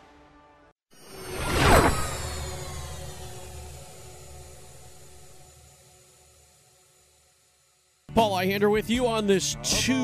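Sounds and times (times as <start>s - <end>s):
whoosh with held tones: 0.9s - 8.0s.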